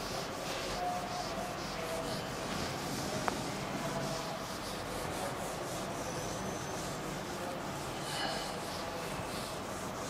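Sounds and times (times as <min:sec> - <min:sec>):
eraser rubbing on whiteboard: 0:00.0 - 0:10.0.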